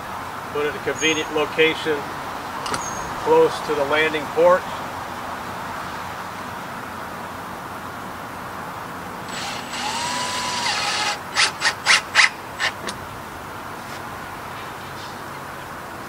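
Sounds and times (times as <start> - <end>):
cordless drill driving screws: 9.3 - 12.9.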